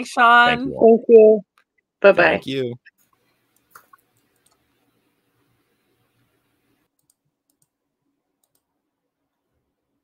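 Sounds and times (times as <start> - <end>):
faint clicks: 3.0 - 5.0, 6.9 - 7.8, 8.4 - 8.7.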